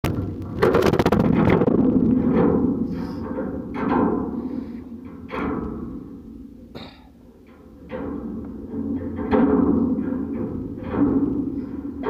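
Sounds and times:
deep drum hits: 0:00.0 - 0:04.5.

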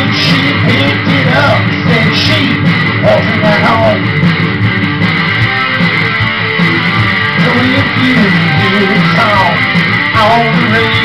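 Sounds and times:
loud electric guitar strumming: 0:00.0 - 0:11.0.

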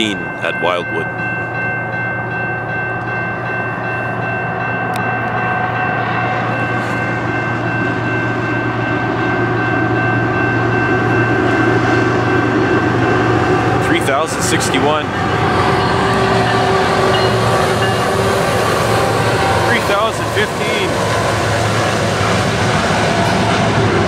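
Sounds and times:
level-crossing warning bell: 0:00.0 - 0:24.0
diesel locomotive rumble: 0:02.6 - 0:24.0.

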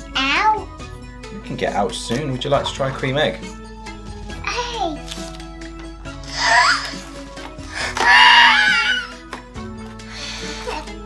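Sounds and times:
light background music: 0:00.0 - 0:11.0
toddler squealing: 0:07.8 - 0:09.2.

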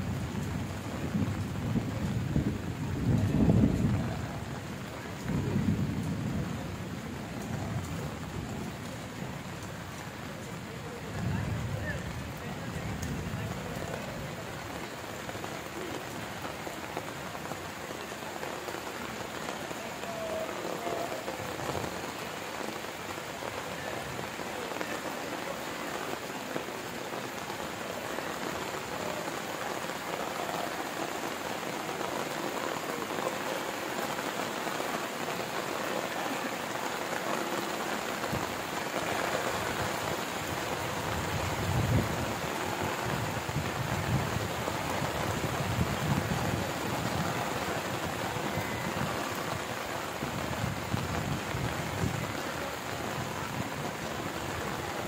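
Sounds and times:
rain on a metal roof: 0:00.0 - 0:55.0.

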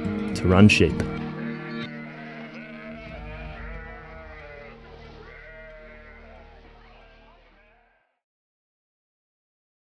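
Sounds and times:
sheep bleating: 0:01.1 - 0:08.2.

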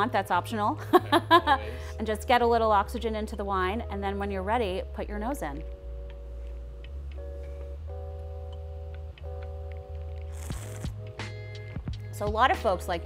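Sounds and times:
background music with sustained chords: 0:00.0 - 0:13.0.

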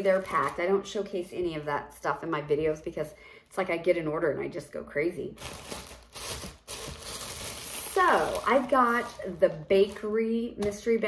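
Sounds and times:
plastic packaging crinkling: 0:00.0 - 0:00.8, 0:05.4 - 0:10.3.

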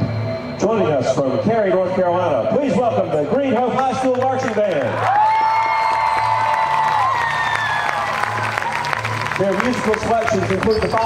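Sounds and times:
crowd cheering and clapping: 0:03.6 - 0:11.0.

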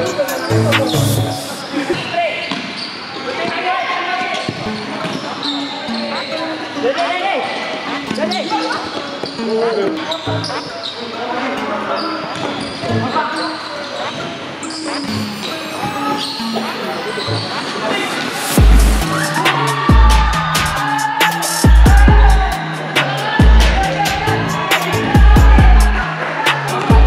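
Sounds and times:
players shouting: 0:15.4 - 0:27.0.

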